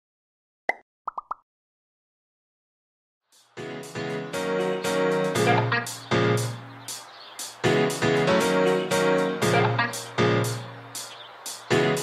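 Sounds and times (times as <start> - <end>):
pitched pop sound effects: 0.7 - 1.4.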